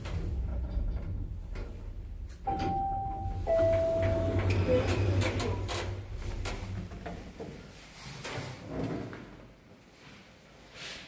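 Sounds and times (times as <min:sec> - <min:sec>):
lift doors sliding: 0:00.0 - 0:09.4.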